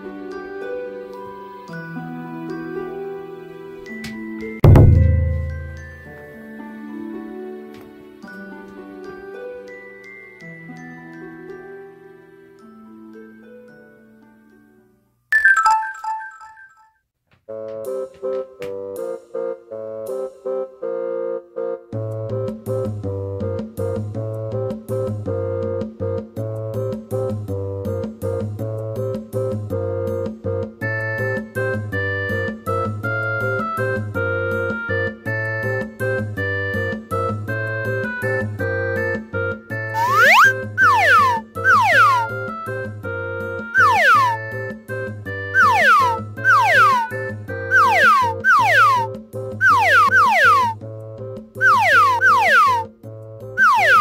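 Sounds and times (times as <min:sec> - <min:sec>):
playful children's tune: 0:15.3 - 0:16.9, 0:36.6 - 0:50.9, 0:51.6 - 0:53.0, 0:53.6 - 0:54.0
bell-like chime jingle: 0:15.4 - 0:16.9
whistle-like pitch glide: 0:40.0 - 0:42.6, 0:43.8 - 0:44.6, 0:45.6 - 0:50.8, 0:51.6 - 0:52.9, 0:53.6 - 0:54.0.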